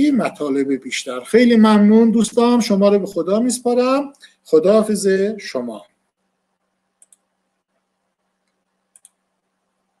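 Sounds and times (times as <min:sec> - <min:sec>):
faint double clicks: 0:08.5 - 0:09.2.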